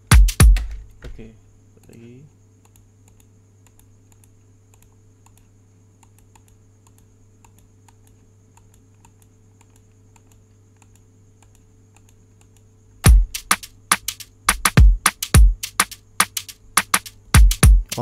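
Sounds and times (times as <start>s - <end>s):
low electrical hum: 0.0s - 18.0s
computer mouse clicks: 2.6s - 12.7s.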